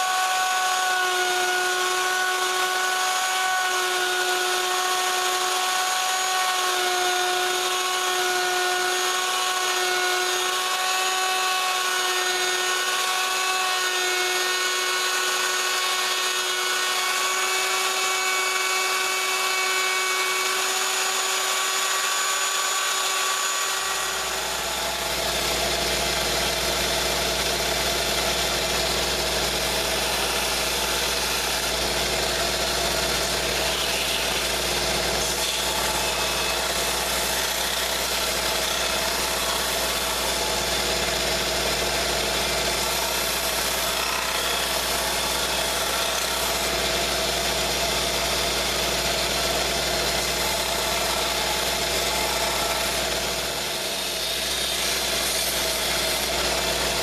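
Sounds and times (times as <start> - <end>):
belt sander motor hum: 0.0 - 57.0
router whining: 0.0 - 57.0
wood being sanded: 0.0 - 57.0.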